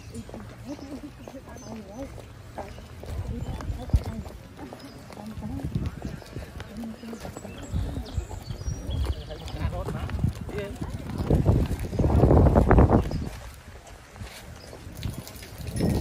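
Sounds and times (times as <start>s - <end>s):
footsteps on wet asphalt: 0.0s - 16.0s
voices talking quietly: 0.0s - 16.0s.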